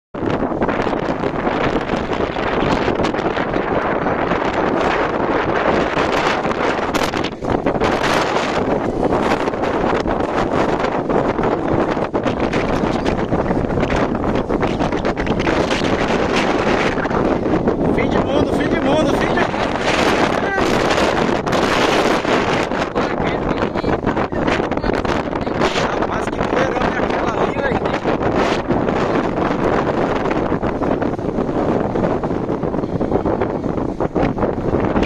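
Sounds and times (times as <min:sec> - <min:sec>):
strong wind on microphone: 0:00.2 - 0:35.0.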